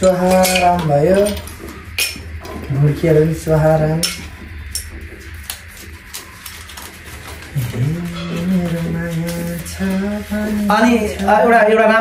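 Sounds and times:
man humming a low note: 7.6s - 10.7s.

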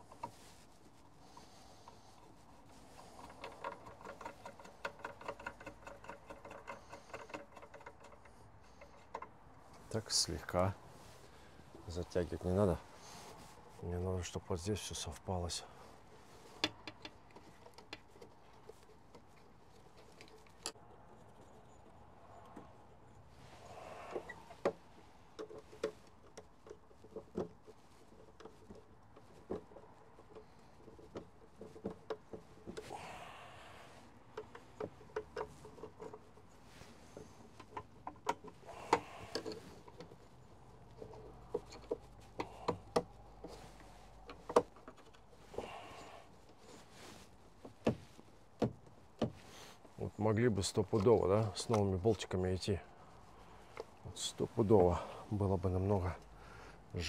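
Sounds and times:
rustling scrapes: 0.0s - 16.6s, 33.8s - 57.0s
clicks and taps on metal frame: 3.2s - 10.0s, 16.5s - 20.8s.

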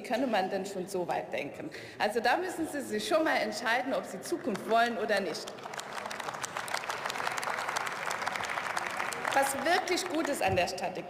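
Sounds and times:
many hands clapping: 4.4s - 10.6s.

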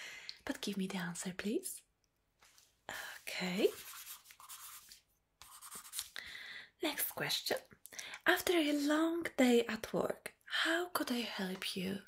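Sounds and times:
pen scratching on paper: 3.6s - 6.2s.

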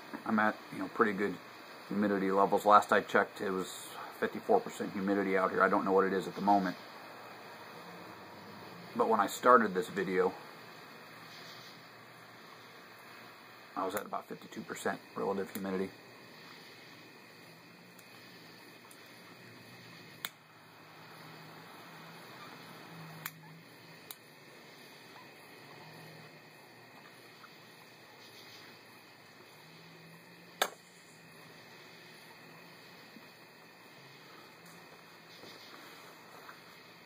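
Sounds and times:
faint background hiss: 0.0s - 37.0s
sharp clicks: 20.2s - 20.4s, 23.2s - 23.4s, 24.0s - 24.2s, 30.6s - 30.9s.

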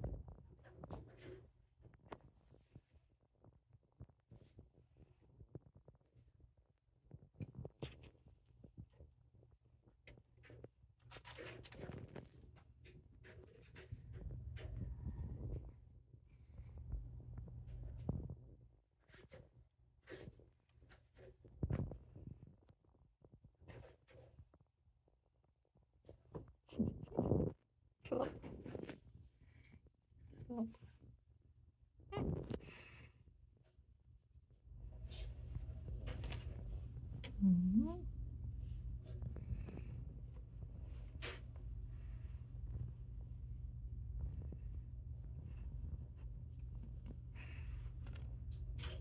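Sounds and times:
cat purring: 26.7s - 29.6s, 35.8s - 48.2s.

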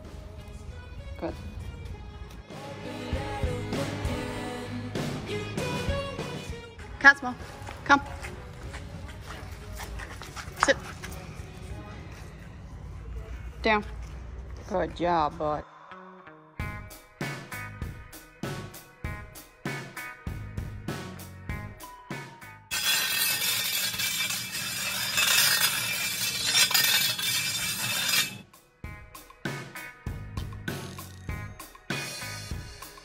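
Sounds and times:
faint background music: 0.0s - 33.0s
shovel scraping on concrete: 22.7s - 28.4s.

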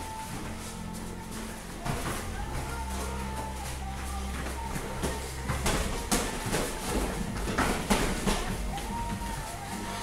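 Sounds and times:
feet slapping on foam mats: 0.0s - 10.0s
kicks and punches landing: 4.4s - 9.3s.

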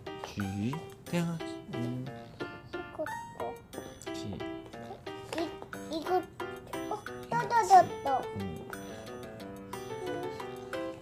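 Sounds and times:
music with short melodic notes: 0.0s - 11.0s.

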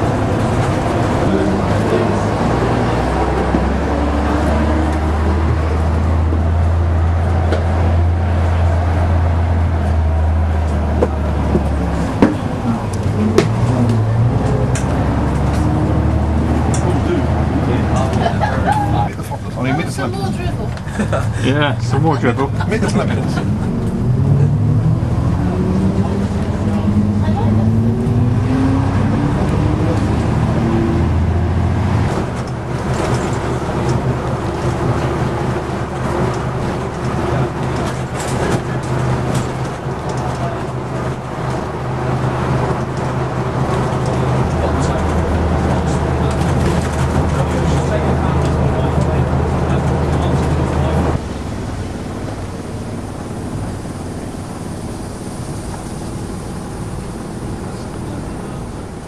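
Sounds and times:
bus engine running: 0.0s - 59.0s
rattles and clicks: 32.1s - 53.9s.

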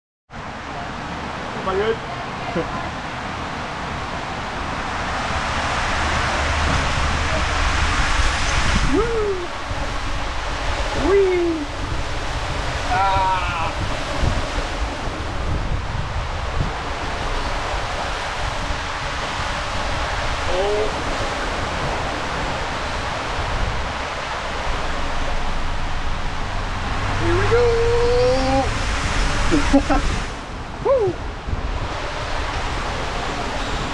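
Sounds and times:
water rushing in slide tube: 2.4s - 33.9s
rider sliding down waterslide: 3.8s - 33.9s
rider crying out: 12.8s - 13.8s, 27.2s - 28.7s.

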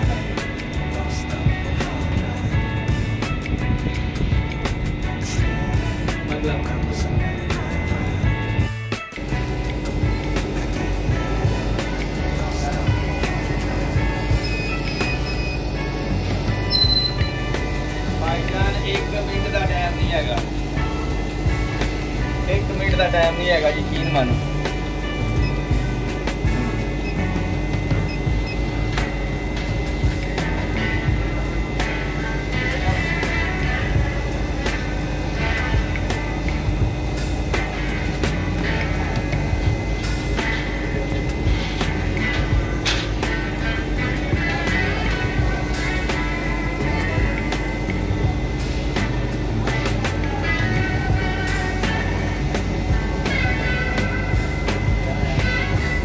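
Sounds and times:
background music: 0.0s - 56.0s
low hum: 0.0s - 56.0s.

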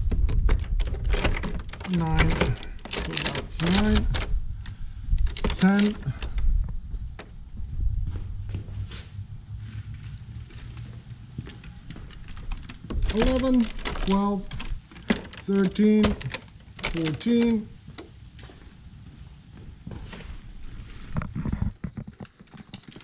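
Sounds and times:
plastic bottles knocking in cooler: 12.6s - 17.3s.

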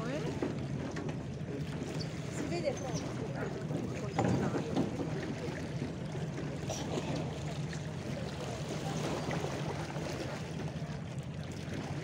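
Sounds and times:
people talking: 2.4s - 5.6s.

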